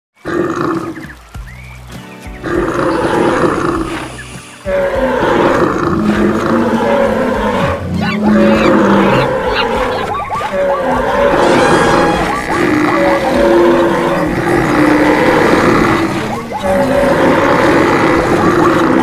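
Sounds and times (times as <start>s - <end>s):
background music: 0.2s - 19.0s
animal roars and calls: 2.4s - 19.0s.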